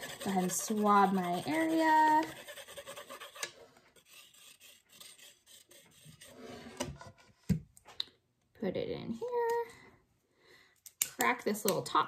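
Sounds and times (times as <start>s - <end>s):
swab scratching on plastic board: 0.0s - 6.8s.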